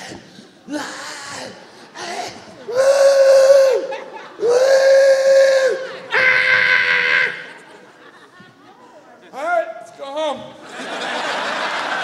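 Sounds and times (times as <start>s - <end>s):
man crying woo into microphone: 2.1s - 7.6s.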